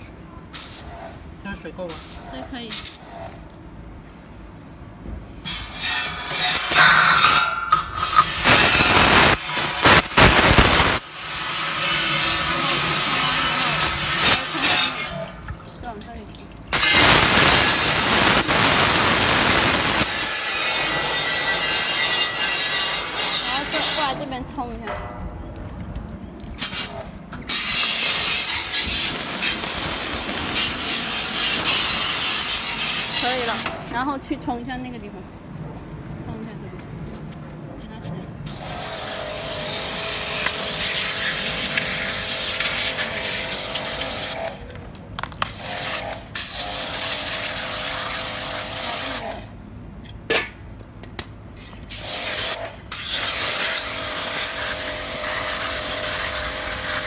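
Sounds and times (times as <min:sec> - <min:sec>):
pressure washer spraying metal: 0:00.5 - 0:00.9, 0:01.8 - 0:03.1, 0:05.5 - 0:24.4, 0:27.5 - 0:33.7, 0:38.5 - 0:44.6, 0:45.4 - 0:49.4, 0:51.8 - 0:57.0.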